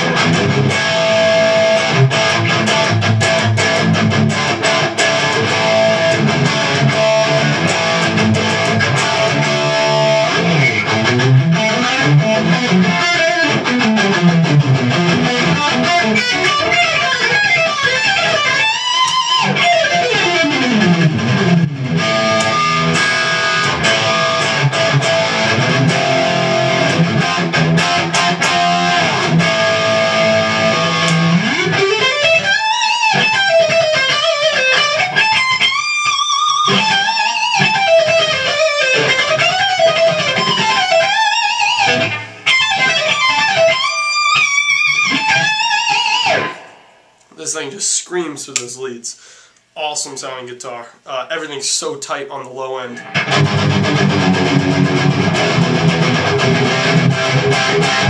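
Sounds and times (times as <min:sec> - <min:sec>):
distorted electric guitar lead: 0:00.0 - 0:47.3, 0:53.0 - 0:58.0.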